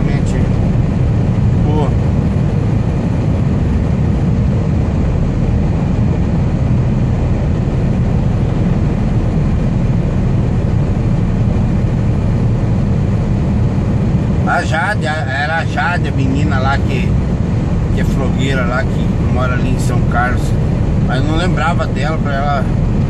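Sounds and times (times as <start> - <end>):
truck engine drone: 0.0 - 23.0
tyres on road: 0.0 - 23.0.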